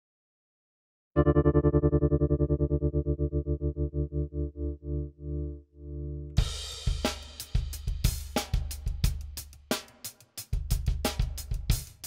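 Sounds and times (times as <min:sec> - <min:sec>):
electric keyboard chord with tremolo: 0:01.2 - 0:06.4.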